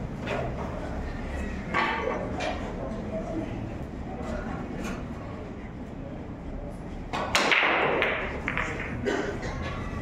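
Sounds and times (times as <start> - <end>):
pool balls clattering: 7.1 - 9.2
cue ball cracking into pool balls: 7.2 - 9.0.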